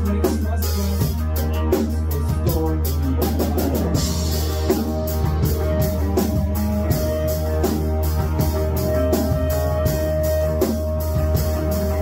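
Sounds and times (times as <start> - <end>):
rock band playing: 0.0 - 12.0.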